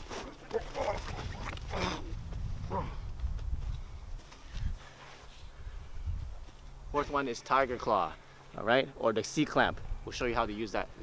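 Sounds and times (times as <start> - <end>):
wind rumble on microphone: 0.6 - 4.9, 5.5 - 7.0.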